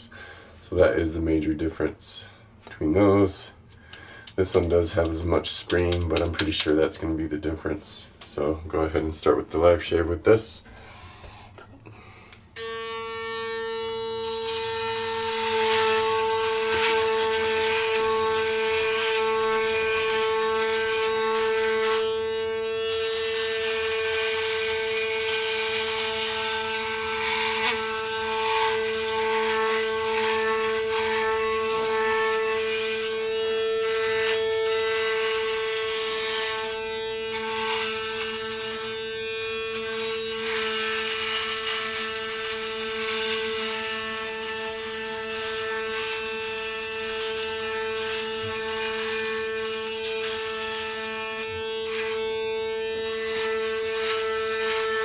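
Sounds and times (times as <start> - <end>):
electric shaver motor hum: 12.5 - 55.0
shaver rasping on stubble: 12.6 - 55.0.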